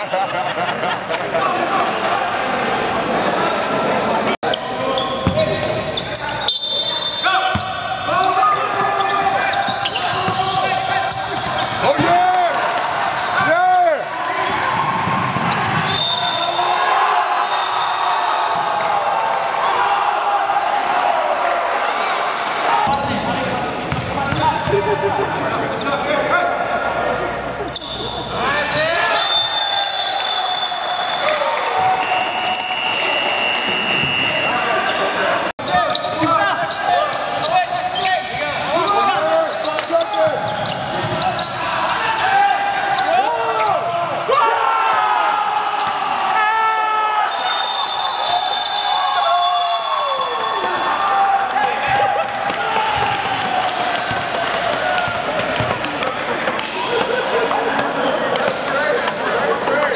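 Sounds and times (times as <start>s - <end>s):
players shouting: 1.4s - 59.9s
basketball bouncing on hardwood: 23.9s - 24.1s.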